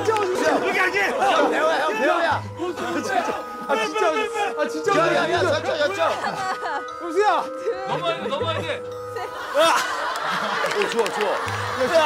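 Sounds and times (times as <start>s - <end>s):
people shouting and laughing: 0.0s - 12.0s.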